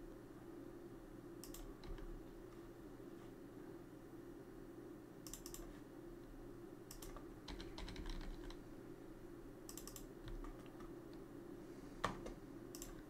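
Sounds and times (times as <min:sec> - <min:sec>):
low steady hum: 0:00.0 - 0:13.0
computer mouse clicks: 0:01.4 - 0:02.1, 0:05.2 - 0:05.7, 0:06.9 - 0:08.6, 0:09.7 - 0:11.2, 0:12.7 - 0:13.0
keyboard keystrokes: 0:06.9 - 0:08.6, 0:09.7 - 0:10.9, 0:12.7 - 0:13.0.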